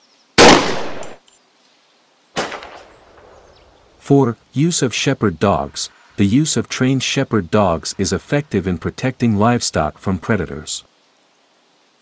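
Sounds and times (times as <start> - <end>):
gunshots: 0.4 - 1.2, 2.4 - 3.4.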